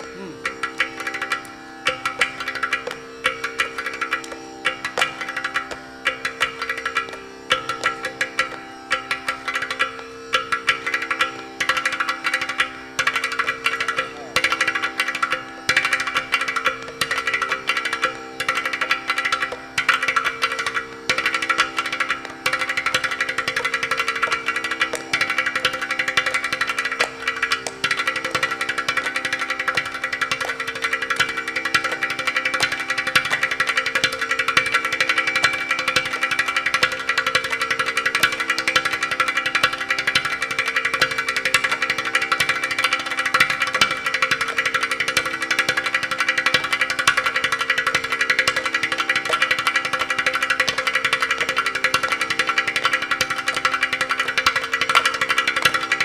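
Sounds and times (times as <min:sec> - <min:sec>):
tanpura drone: 0:00.0 - 0:56.0.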